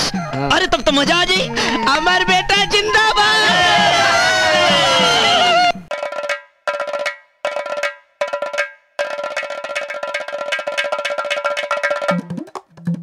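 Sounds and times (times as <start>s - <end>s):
people shouting: 1.3s - 5.9s
metallic bell-like percussion: 5.9s - 12.2s.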